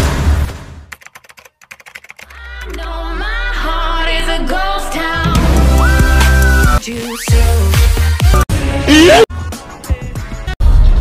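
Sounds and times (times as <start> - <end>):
computer keyboard typing: 0.9 - 2.8
loud music: 2.4 - 11.0.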